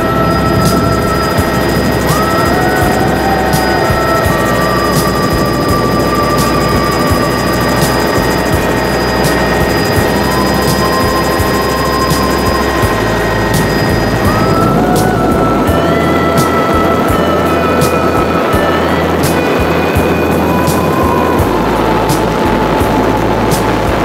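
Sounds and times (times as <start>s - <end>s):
helicopter rotor and engine drone: 0.0s - 24.0s.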